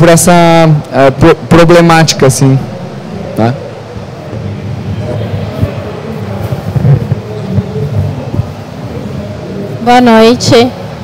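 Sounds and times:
low rumble of hall noise: 0:00.0 - 0:11.0
faint distant voices: 0:00.1 - 0:11.0.

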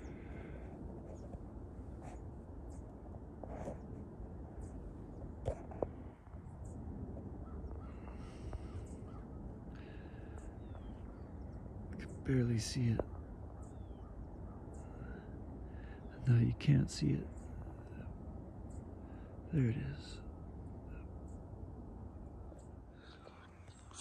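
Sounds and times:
distant birds cawing: 0:00.0 - 0:24.0
low background noise: 0:00.0 - 0:24.0.

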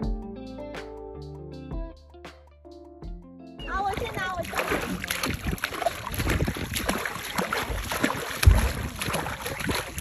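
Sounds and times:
feet splashing in water: 0:03.8 - 0:10.0
wind buffeting microphone: 0:03.9 - 0:10.0
heavy low thump: 0:08.4 - 0:09.0.

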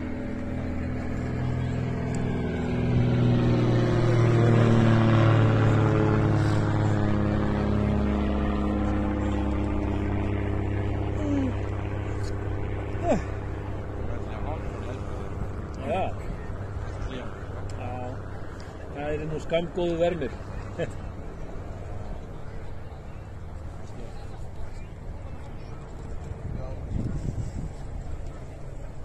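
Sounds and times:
steady engine drone: 0:00.0 - 0:29.0.

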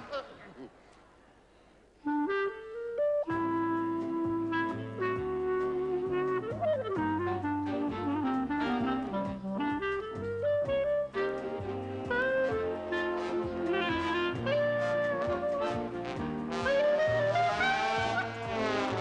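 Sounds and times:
clarinet melody: 0:02.0 - 0:19.0
accompaniment with bass line: 0:03.0 - 0:19.0.

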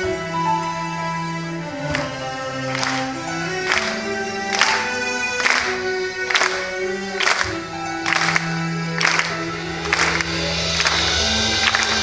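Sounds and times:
drum and cymbal hits: 0:07.2 - 0:12.0.

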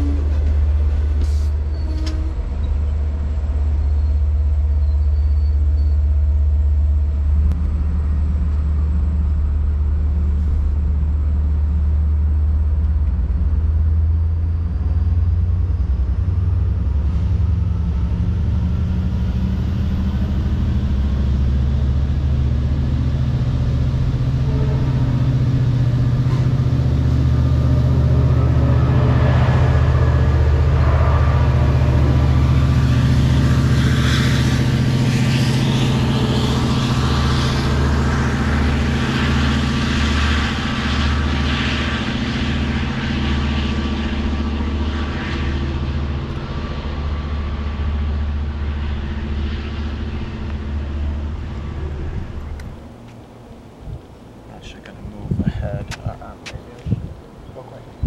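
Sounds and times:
train clicks: 0:00.0 - 0:02.9
diesel engine drone: 0:00.0 - 0:58.0.

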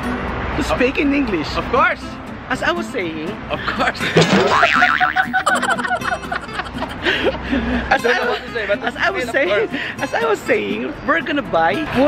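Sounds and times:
men laughing: 0:04.0 - 0:09.9
wobbling cartoon sound effect: 0:04.4 - 0:06.9.

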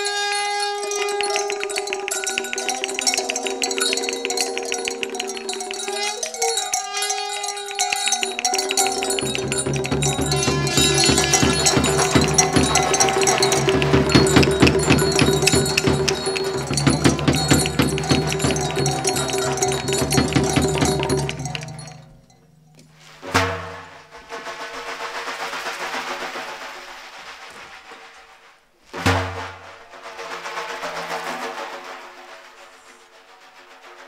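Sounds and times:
wind instrument melody: 0:00.0 - 0:22.1
fast drum beats: 0:00.9 - 0:22.1
drum stroke: 0:07.4 - 0:22.0.

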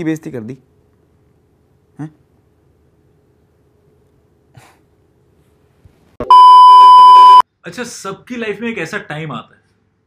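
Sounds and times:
steady beep test tone: 0:06.2 - 0:07.4.

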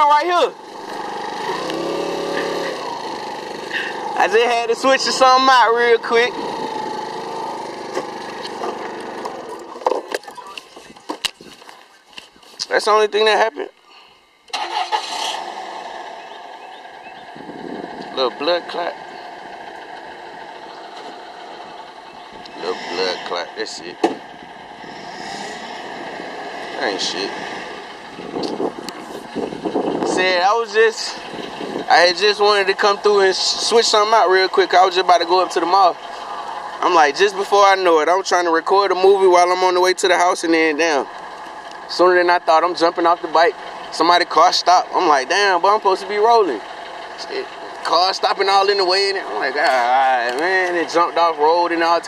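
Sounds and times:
engine humming: 0:00.0 - 0:52.0
rushing street traffic: 0:00.0 - 0:52.0
background rumble: 0:02.3 - 0:52.0.

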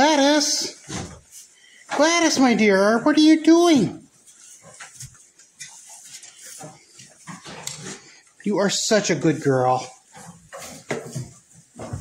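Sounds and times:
hay rustling: 0:00.0 - 0:07.4
goats chewing: 0:04.0 - 0:12.0.

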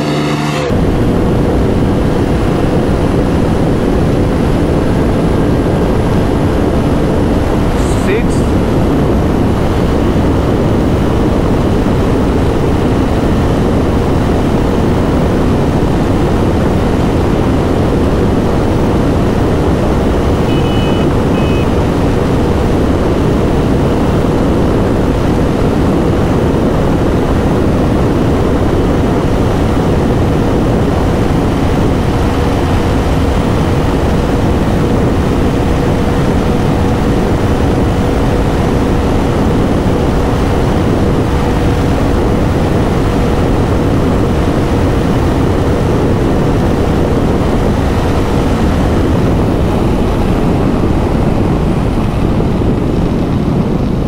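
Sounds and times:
motorcycle engine droning: 0:00.0 - 0:54.0
wind rushing over microphone: 0:00.0 - 0:54.0.

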